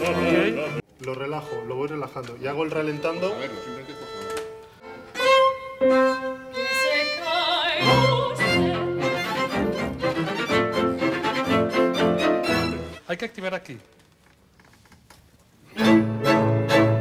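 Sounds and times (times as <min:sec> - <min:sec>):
held violin notes: 0:00.0 - 0:13.0
string section playing: 0:00.0 - 0:13.1, 0:15.7 - 0:17.0.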